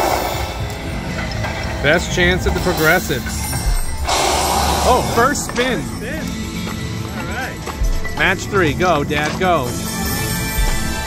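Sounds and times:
slot machine music: 0.1 - 11.0
casino background din: 1.3 - 11.0.

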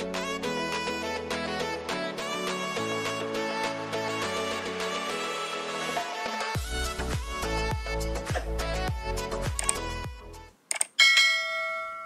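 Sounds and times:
background music: 0.0 - 10.9
mouse click: 9.6 - 9.8, 10.7 - 10.9
bright bell chime: 11.0 - 12.0.

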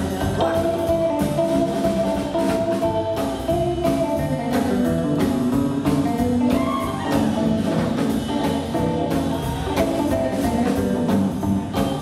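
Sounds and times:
rockabilly band playing: 0.0 - 12.0
slapped double bass: 0.0 - 12.0.

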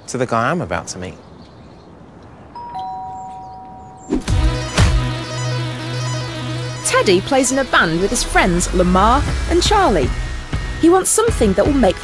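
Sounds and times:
two-note doorbell chime: 2.6 - 4.1.

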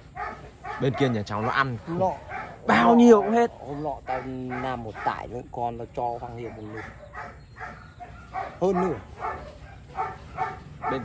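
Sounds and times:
dog barking: 0.0 - 11.0.

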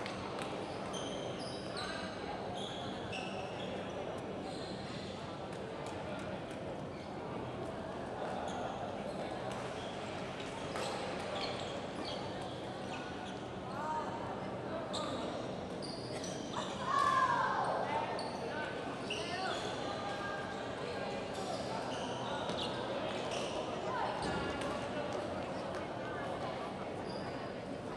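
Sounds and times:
shoes squeaking on court: 9.6 - 13.6, 21.4 - 24.4.

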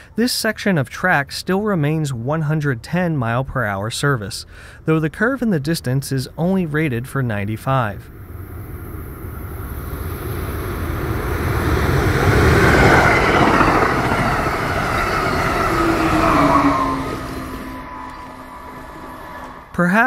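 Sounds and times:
locomotive whine dropping in pitch: 8.1 - 19.8
train passing at speed: 8.1 - 19.8.

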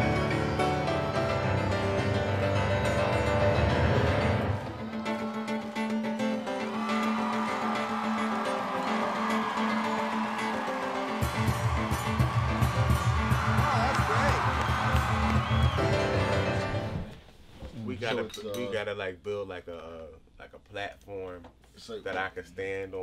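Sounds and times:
grand piano music: 0.0 - 6.0.

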